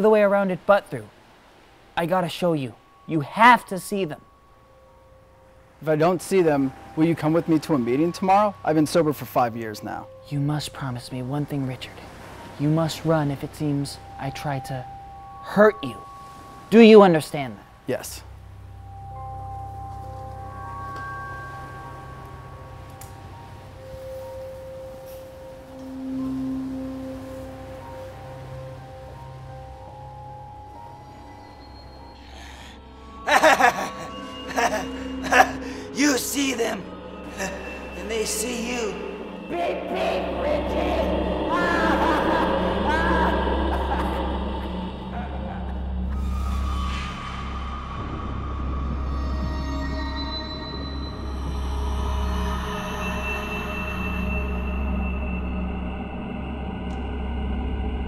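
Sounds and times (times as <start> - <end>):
bell-like tones: 2.0 - 58.0
low drone: 18.2 - 58.0.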